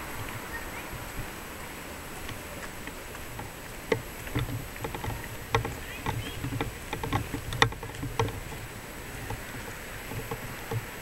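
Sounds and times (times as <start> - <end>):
faint outdoor background: 0.0 - 11.0
camera handling knocks and rubbing: 3.9 - 8.6, 10.1 - 10.9.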